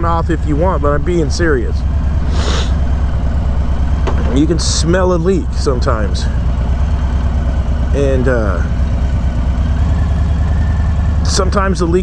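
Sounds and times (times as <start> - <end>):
motorcycle engine rumbling: 0.0 - 12.0.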